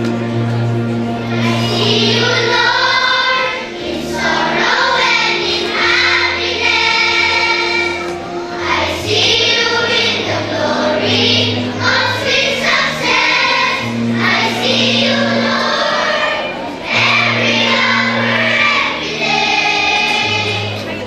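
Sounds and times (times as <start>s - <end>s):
children's choir singing: 0.0s - 21.0s
low accompaniment notes: 0.0s - 21.0s.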